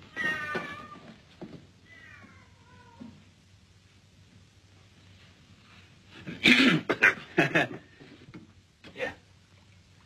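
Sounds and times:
cat meowing: 0.1s - 1.2s, 1.8s - 3.2s.

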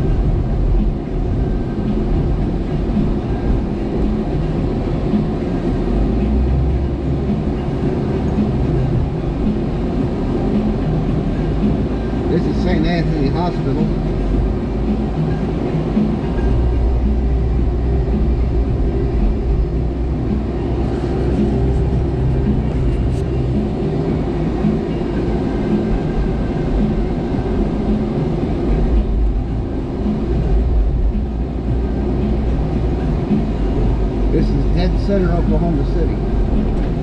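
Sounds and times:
engine and road rumble in car cabin: 0.0s - 37.0s.

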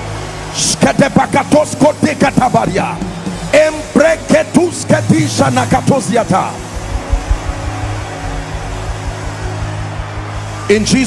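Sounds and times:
keyboard chords: 0.0s - 11.0s
low bass thumps: 6.8s - 9.6s.

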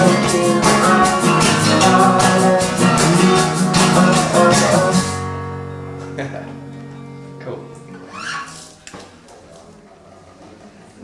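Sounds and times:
hand shaker beat: 0.0s - 5.2s
acoustic guitar playing: 0.0s - 9.2s.

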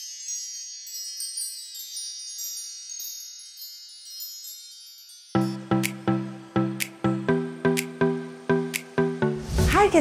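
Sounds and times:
wind-chime tones ringing: 0.0s - 6.8s.

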